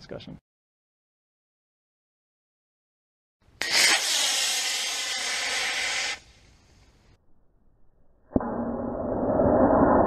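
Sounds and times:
rocket motor exhaust hiss: 0:03.6 - 0:07.1.

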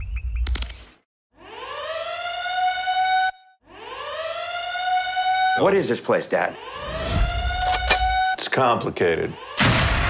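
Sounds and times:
warning siren wailing: 0:01.3 - 0:09.7.

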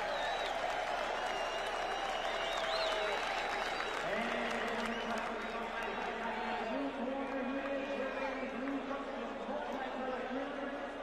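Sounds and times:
shrill whistles: 0:00.0 - 0:00.6, 0:01.2 - 0:04.0
crowd applauding and cheering: 0:00.0 - 0:10.2.

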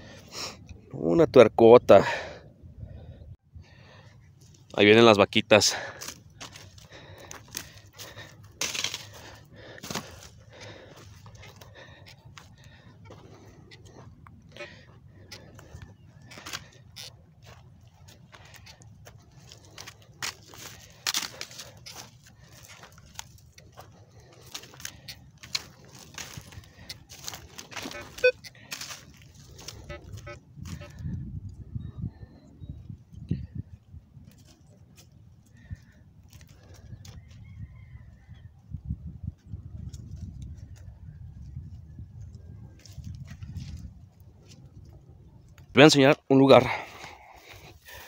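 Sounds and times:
footsteps crunching corn stubble: 0:04.4 - 0:31.2, 0:33.8 - 0:37.5, 0:39.7 - 0:48.0.

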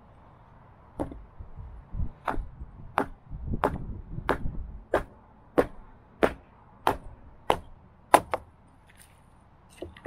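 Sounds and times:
hatchet knocking log on plank: 0:01.0 - 0:01.2, 0:02.2 - 0:08.5
dull thuds: 0:01.0 - 0:01.3.

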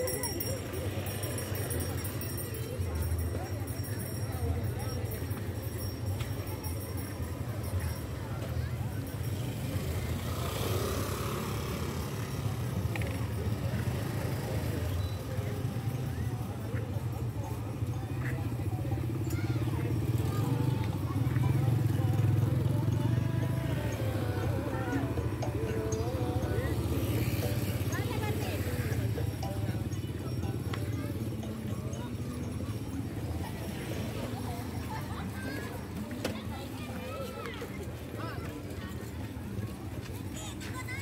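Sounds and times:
crowd chatter: 0:00.0 - 0:41.0
motor scooter passing: 0:07.1 - 0:41.0
wavering singing or music: 0:21.8 - 0:34.4.

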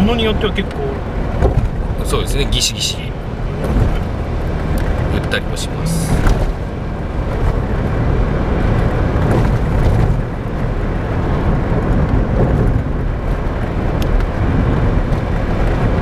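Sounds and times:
car road and engine noise: 0:00.0 - 0:16.0.

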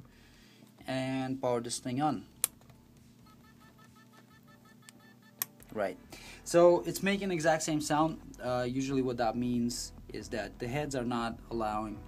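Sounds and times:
faint rapid hard drive beeps: 0:03.2 - 0:05.4.

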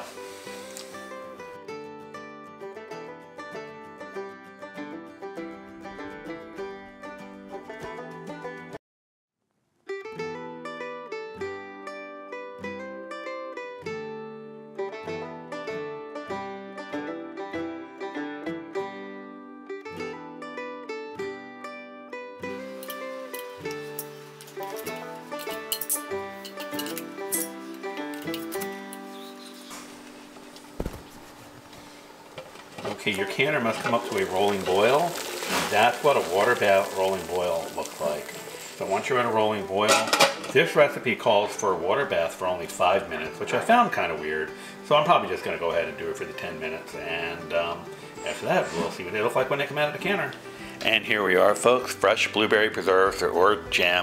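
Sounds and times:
plucked notes background music: 0:00.0 - 0:08.8, 0:09.9 - 0:54.0.

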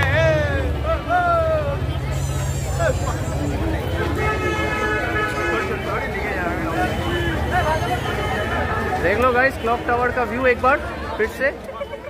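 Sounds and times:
street crowd chatter: 0:00.0 - 0:12.0
horn toot: 0:01.8 - 0:09.0.

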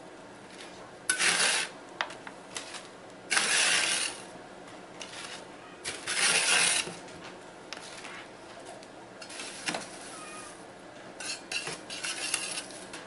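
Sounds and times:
metal scraper on steel tray: 0:01.1 - 0:01.7, 0:02.6 - 0:04.3, 0:05.0 - 0:07.0, 0:11.2 - 0:12.8.

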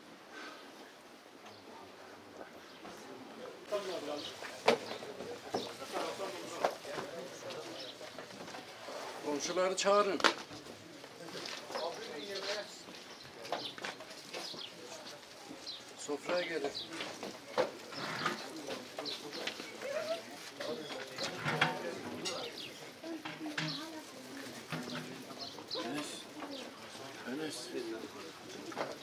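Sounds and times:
murmured voices: 0:00.3 - 0:29.0
birds chirping: 0:11.7 - 0:28.6.

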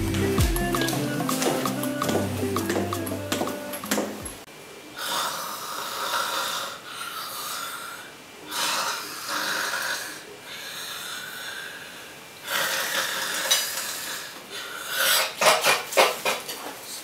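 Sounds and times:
man snoring: 0:05.0 - 0:10.3.

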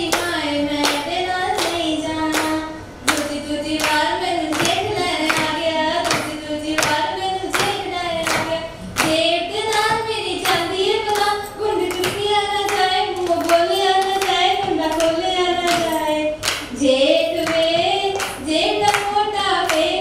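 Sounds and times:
rhythmic hand-clapping: 0:00.0 - 0:20.0
woman singing into a microphone: 0:00.0 - 0:20.0.

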